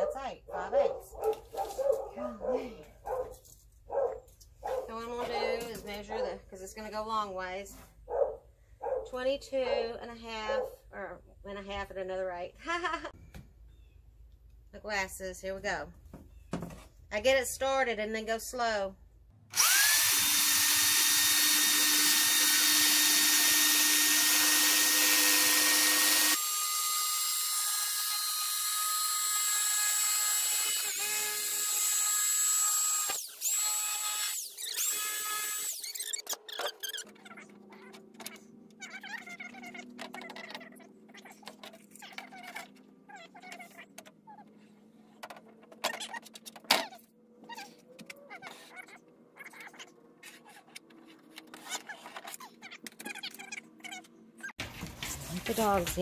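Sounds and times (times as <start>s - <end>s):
jigsaw cutting panel: 19.6s - 38.4s.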